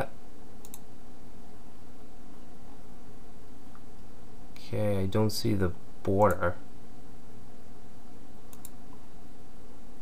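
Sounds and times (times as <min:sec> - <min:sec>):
low room hum: 0:00.0 - 0:10.0
computer mouse clicks: 0:00.6 - 0:00.9, 0:08.5 - 0:09.0.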